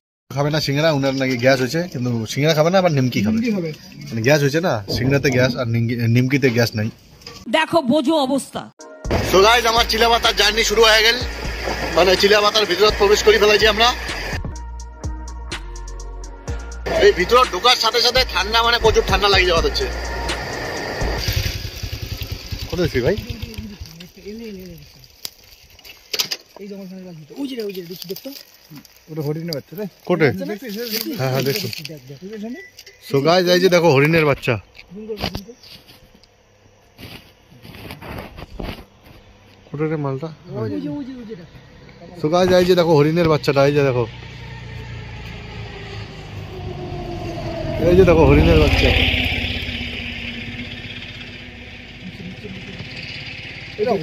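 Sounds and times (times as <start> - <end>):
man's voice: 9.1 - 11.3, 12.0 - 14.3, 16.8 - 20.1
vehicle engine running: 9.1 - 14.4, 16.8 - 25.0, 38.9 - 54.0
motorcycle engine idling: 18.2 - 24.7, 49.0 - 54.0.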